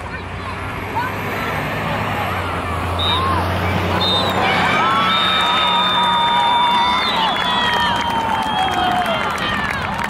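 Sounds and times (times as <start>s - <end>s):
distant shouts: 0.0s - 10.0s.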